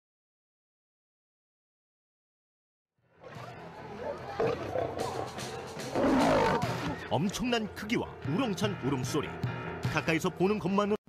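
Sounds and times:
background music: 0:03.0 - 0:11.0
big cat roaring: 0:04.3 - 0:06.9.

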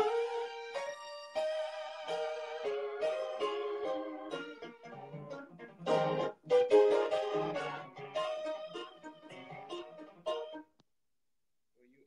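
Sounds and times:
electronic keyboard melody over chords: 0:00.0 - 0:10.7.

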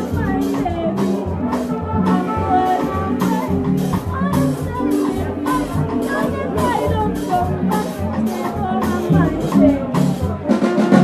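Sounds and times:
bass notes: 0:00.0 - 0:11.0
small jazz band playing: 0:00.0 - 0:11.0.

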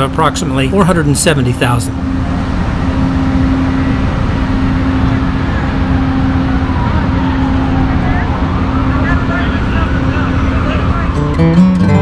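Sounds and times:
train low rumble: 0:00.0 - 0:11.6
constant hum: 0:00.0 - 0:12.0.

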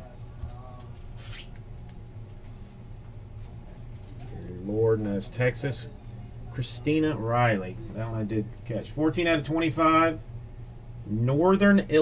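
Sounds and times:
steady low hum: 0:00.0 - 0:12.0
card sliding against card: 0:01.2 - 0:01.6.

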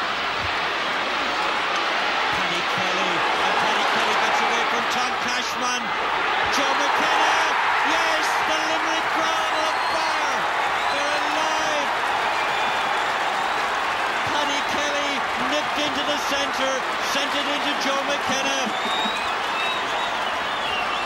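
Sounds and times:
stadium crowd roar: 0:00.0 - 0:21.0
voices shouting: 0:03.0 - 0:17.8.

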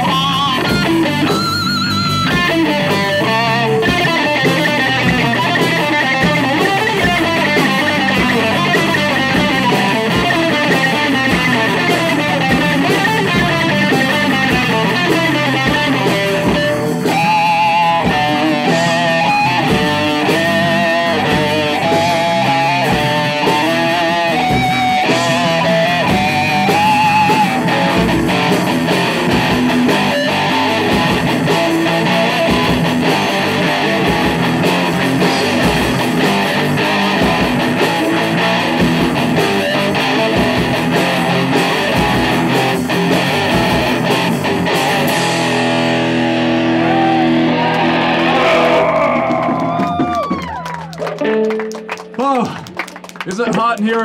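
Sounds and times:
bass guitar: 0:00.0 - 0:54.0
drums: 0:00.0 - 0:54.0
electric guitar: 0:00.0 - 0:54.0.

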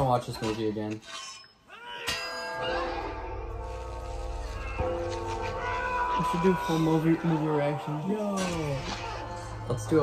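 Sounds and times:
church bell clanging: 0:02.1 - 0:08.6
music: 0:02.5 - 0:10.0.

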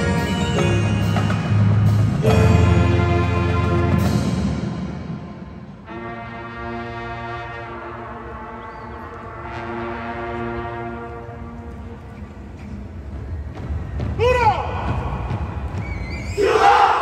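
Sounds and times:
marching band sustained chords: 0:00.0 - 0:15.6.

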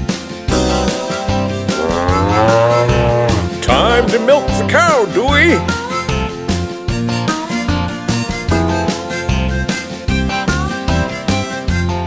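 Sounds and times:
children's song backing track: 0:00.0 - 0:12.0
cartoon cow mooing: 0:00.8 - 0:04.6.

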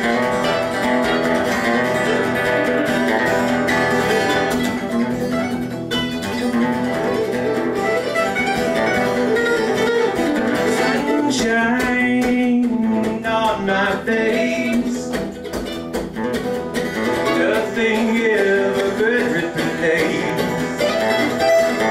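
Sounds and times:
acoustic guitar strumming: 0:00.0 - 0:21.9
mandolin picking melody: 0:00.0 - 0:21.9.

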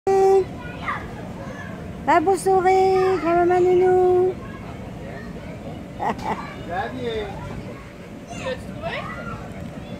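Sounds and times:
children playing: 0:00.2 - 0:02.0, 0:02.6 - 0:09.9.

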